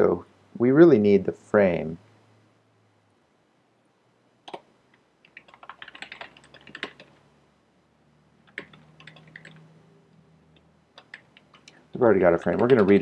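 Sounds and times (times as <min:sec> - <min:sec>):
computer keyboard typing: 0:04.5 - 0:07.2, 0:08.4 - 0:09.7, 0:10.9 - 0:11.8, 0:12.4 - 0:13.0.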